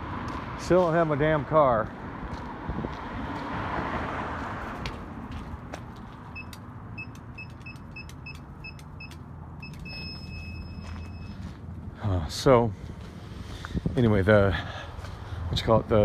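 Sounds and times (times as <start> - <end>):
keypad beeping: 6.3 - 11.3
long keypad beep: 6.4 - 11.4.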